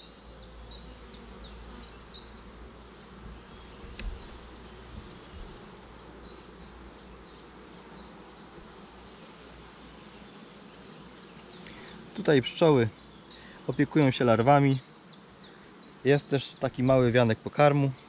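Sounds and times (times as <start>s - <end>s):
honeybees buzzing: 0.0s - 18.0s.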